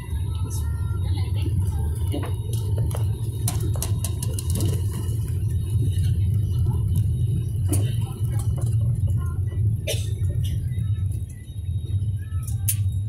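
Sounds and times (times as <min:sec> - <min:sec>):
jet engine and wheel rumble: 0:00.0 - 0:13.0.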